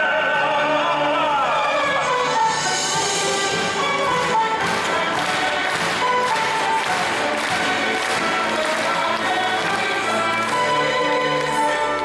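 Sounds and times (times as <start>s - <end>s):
orchestra playing lively tune: 0.0s - 12.0s.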